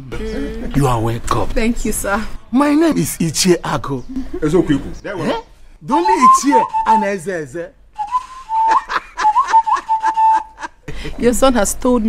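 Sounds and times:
person whistling held note: 0:05.9 - 0:07.1, 0:08.0 - 0:10.5
snickering laughter: 0:08.6 - 0:10.9.

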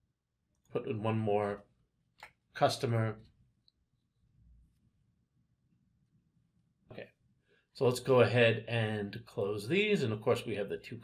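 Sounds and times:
man speaking: 0:00.7 - 0:01.7, 0:02.6 - 0:03.3, 0:07.8 - 0:11.0.

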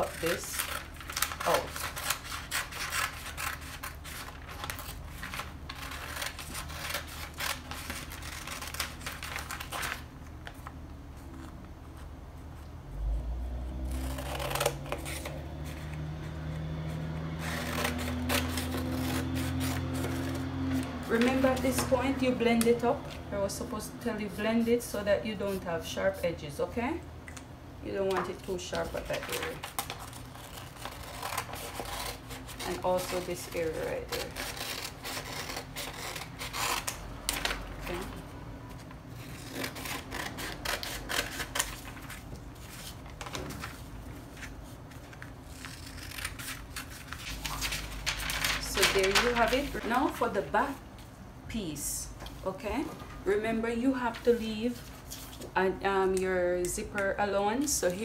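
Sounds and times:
scissors cutting paper: 0:00.0 - 0:10.1, 0:13.9 - 0:16.0, 0:17.4 - 0:22.8, 0:28.0 - 0:38.2, 0:39.2 - 0:43.7, 0:44.4 - 0:50.4
paper crackling: 0:00.0 - 0:12.1, 0:17.4 - 0:22.9, 0:28.1 - 0:50.8.

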